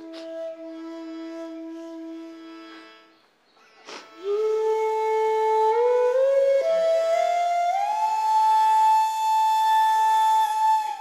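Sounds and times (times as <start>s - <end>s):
flute-like long steady note: 0.0s - 3.2s, 4.1s - 11.0s.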